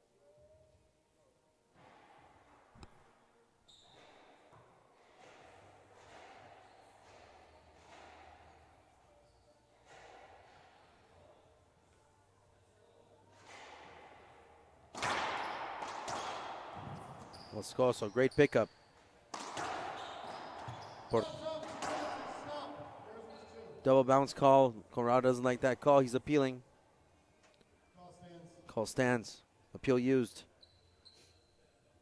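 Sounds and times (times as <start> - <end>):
racquetball hit echoing off walls: 4.0 - 8.8, 13.3 - 17.4, 19.3 - 23.1.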